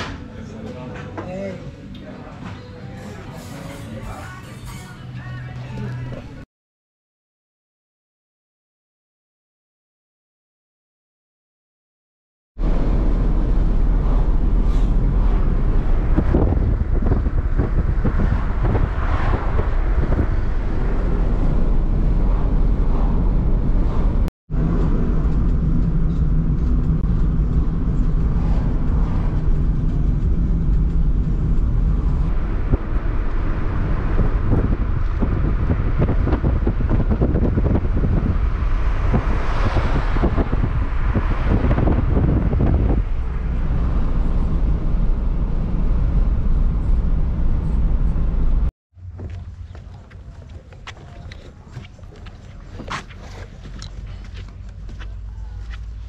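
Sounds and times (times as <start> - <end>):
car road and engine noise: 12.6 - 56.0.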